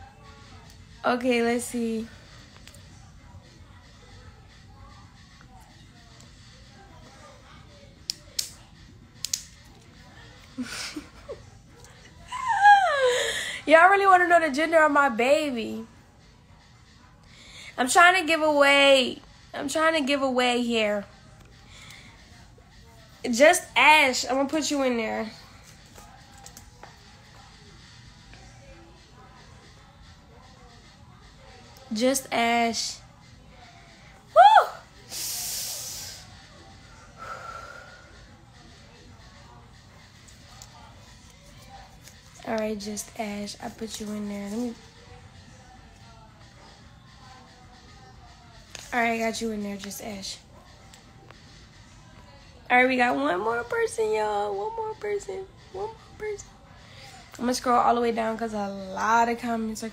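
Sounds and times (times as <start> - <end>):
woman shouting woo: 12.2 - 13.1, 34.3 - 34.9
breathy hiss: 35.0 - 36.3.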